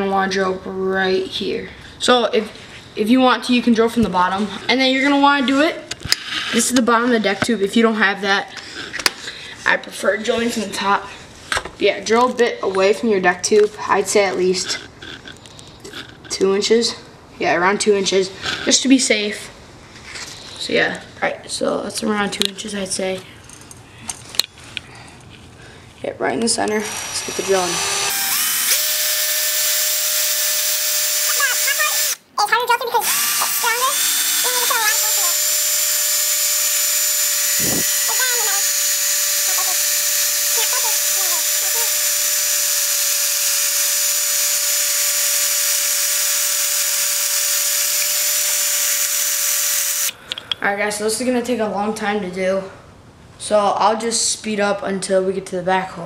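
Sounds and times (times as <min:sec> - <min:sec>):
power drill boring into metal: 0:26.7 - 0:32.2, 0:33.0 - 0:50.2.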